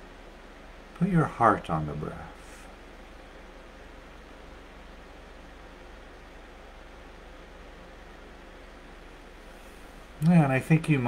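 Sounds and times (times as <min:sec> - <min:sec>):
constant low hum: 0:00.0 - 0:11.0
faint hiss: 0:00.0 - 0:11.0.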